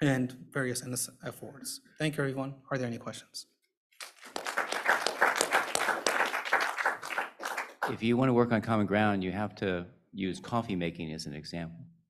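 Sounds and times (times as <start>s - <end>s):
man speaking: 0.0s - 3.5s, 7.8s - 11.9s
audience applauding: 4.0s - 8.1s.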